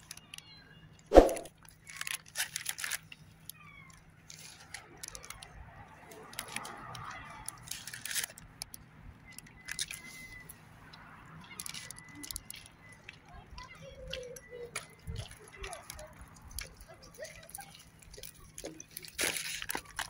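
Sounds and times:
faint outdoor background noise: 0:00.0 - 0:20.0
handling clicks and rustles: 0:01.4 - 0:10.6, 0:14.1 - 0:20.0.

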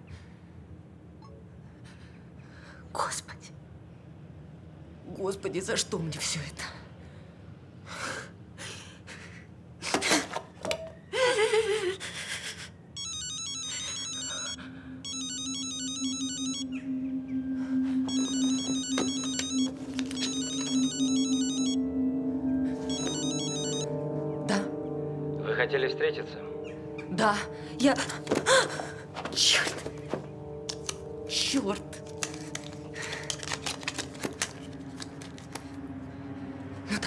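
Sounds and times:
woman sobbing: 0:11.0 - 0:12.8, 0:27.2 - 0:30.1
phone ringtone: 0:13.0 - 0:24.7
film score music: 0:14.1 - 0:37.0.

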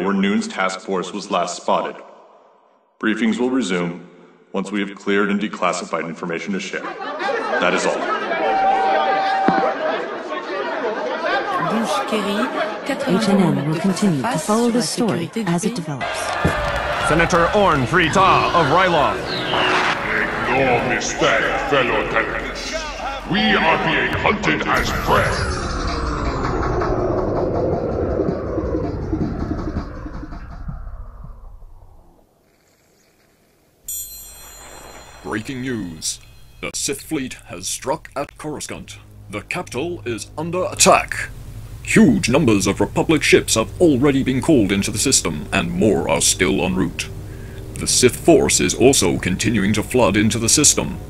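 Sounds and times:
unintelligible chatter of voices: 0:10.2 - 0:16.3
deep sci-fi rumble sweeping down: 0:24.5 - 0:32.2
steady beep-like tone: 0:33.9 - 0:41.0.

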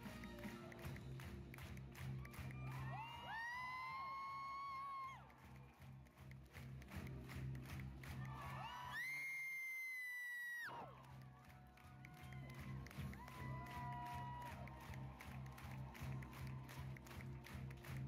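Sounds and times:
music with steady beat: 0:00.0 - 0:02.6
audience cheering and screaming: 0:02.1 - 0:05.6, 0:08.2 - 0:16.9
long high-pitched screams: 0:08.6 - 0:10.8.

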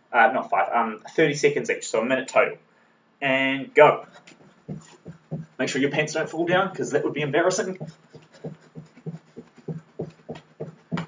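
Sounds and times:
bare feet thudding on floor: 0:04.2 - 0:05.6, 0:07.7 - 0:11.0.

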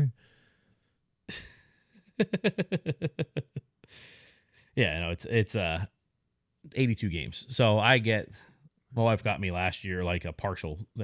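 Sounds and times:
man's breathy exhale: 0:03.9 - 0:04.6.

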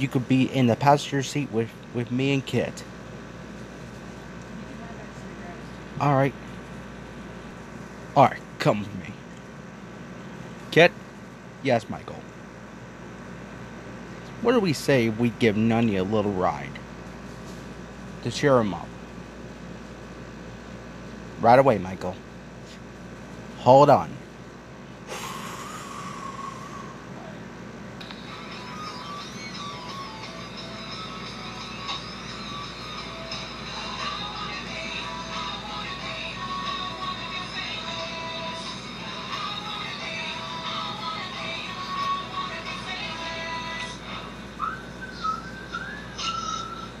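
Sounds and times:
music melody of held tones: 0:28.0 - 0:47.0.

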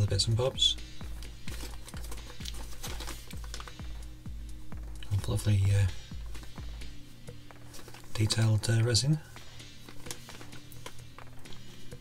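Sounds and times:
quiet background music: 0:00.0 - 0:12.0
plastic bags crinkling: 0:01.1 - 0:03.9, 0:07.4 - 0:11.8.

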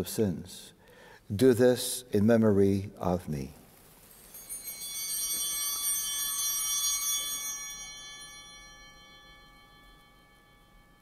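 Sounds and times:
altar bells ringing: 0:04.1 - 0:11.0.

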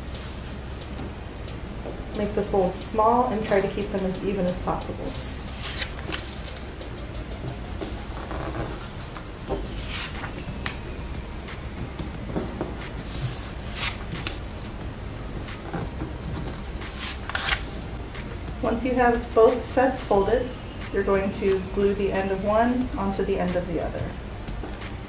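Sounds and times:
low steady hum: 0:00.0 - 0:25.0
paper creasing and rustling: 0:05.1 - 0:06.6, 0:07.8 - 0:10.8, 0:15.5 - 0:17.8.

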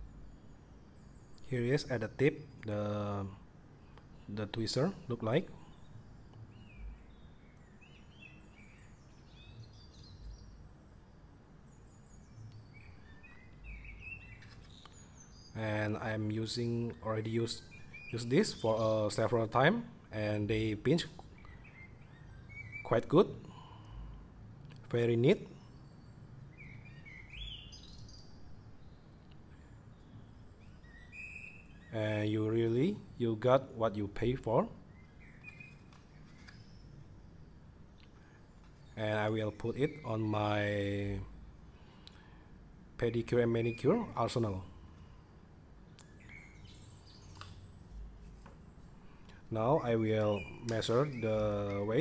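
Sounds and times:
low room rumble: 0:00.0 - 0:52.0
small birds chirping: 0:00.0 - 0:52.0.

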